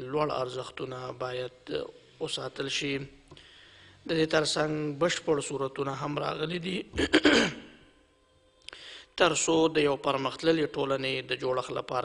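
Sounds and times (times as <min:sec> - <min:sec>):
quick intake of breath: 0:03.3 - 0:04.1.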